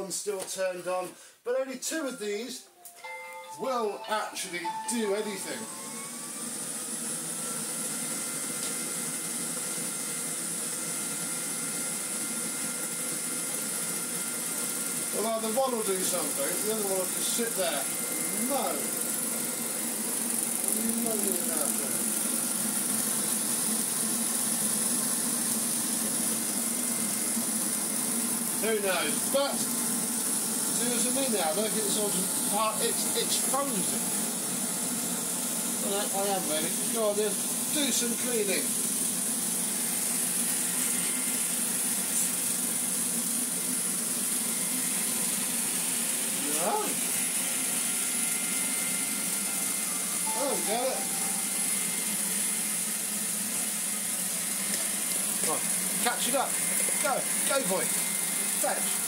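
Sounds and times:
robot vacuum running: 0:05.2 - 0:59.0.

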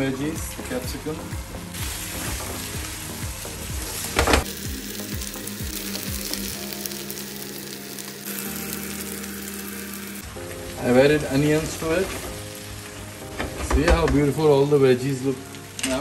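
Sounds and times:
food sizzling in hot oil: 0:00.0 - 0:16.0.

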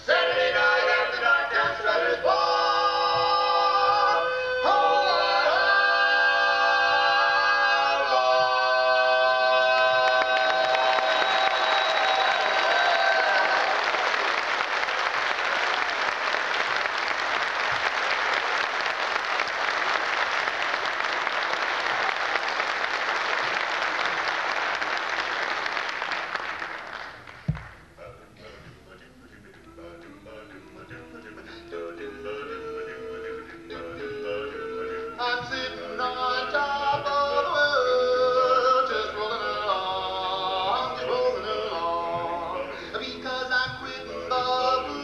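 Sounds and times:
quartet singing a cappella: 0:00.0 - 0:14.1, 0:29.3 - 0:45.0
audience applause: 0:09.8 - 0:27.7.

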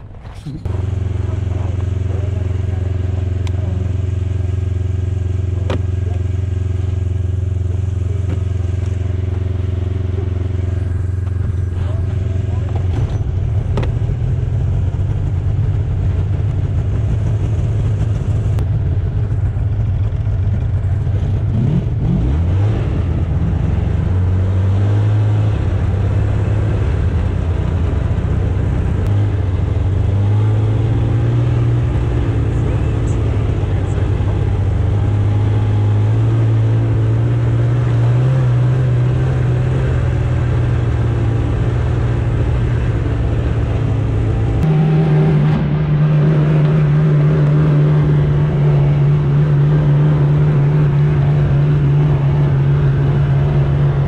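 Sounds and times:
snowmobile engine running: 0:00.0 - 0:54.0.

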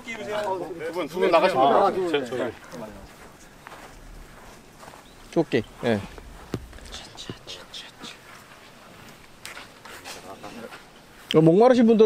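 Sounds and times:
faint voices talking: 0:00.0 - 0:11.9.

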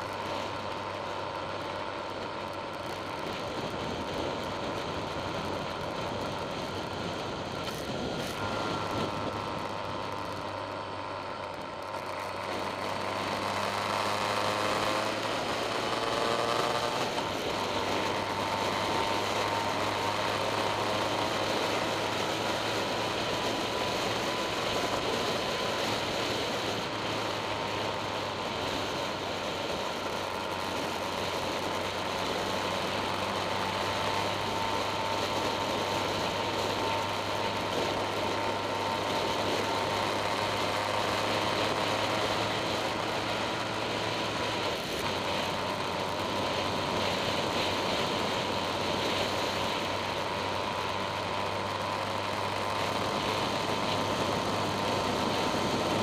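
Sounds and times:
motorcycle engine: 0:00.0 - 0:56.0
wind and road rush: 0:00.0 - 0:56.0.

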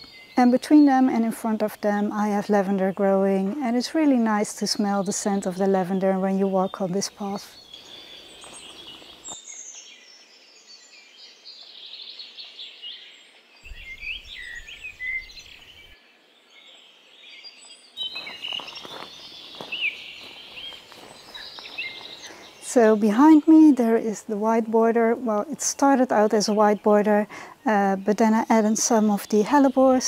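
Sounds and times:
faint outdoor background noise: 0:00.0 - 0:30.0
songbirds chirping: 0:00.0 - 0:30.0.

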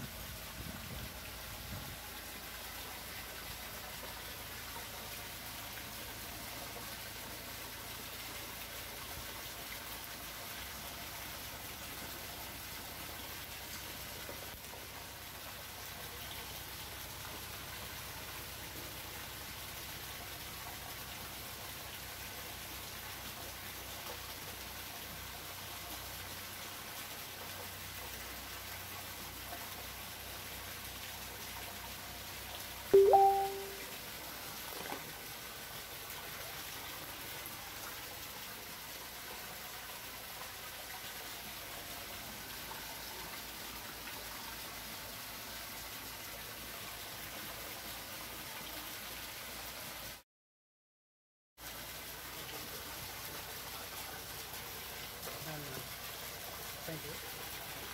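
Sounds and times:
water pouring and splashing: 0:00.0 - 0:50.2, 0:51.6 - 0:57.9.

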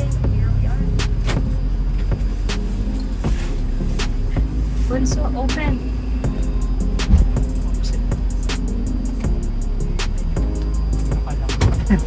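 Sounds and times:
van engine rumble inside cabin: 0:00.0 - 0:12.0.

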